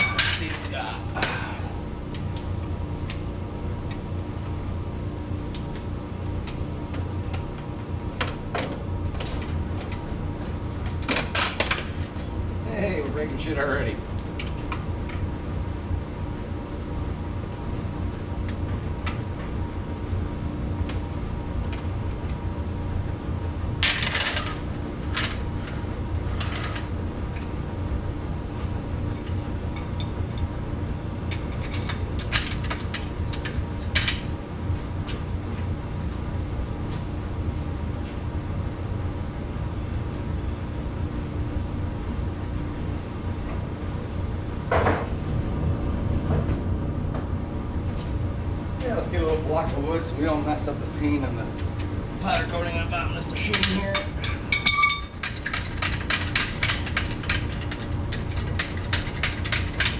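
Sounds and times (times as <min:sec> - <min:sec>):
steady low hum: 0:00.0 - 0:59.9
metallic clanks of tools: 0:53.3 - 0:59.9.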